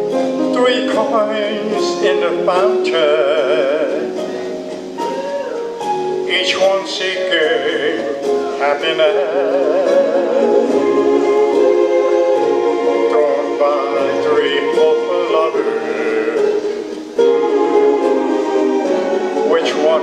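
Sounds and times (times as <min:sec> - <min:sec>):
instrumental backing music: 0:00.0 - 0:20.0
man singing into microphone: 0:00.4 - 0:05.3, 0:06.2 - 0:17.0, 0:19.4 - 0:20.0.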